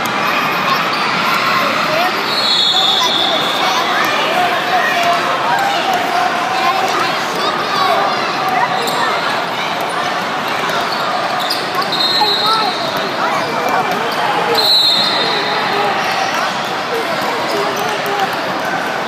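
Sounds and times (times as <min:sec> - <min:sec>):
hubbub of voices echoing: 0:00.0 - 0:19.0
referee's whistle blasts: 0:02.3 - 0:03.6, 0:11.5 - 0:13.0, 0:14.5 - 0:15.5.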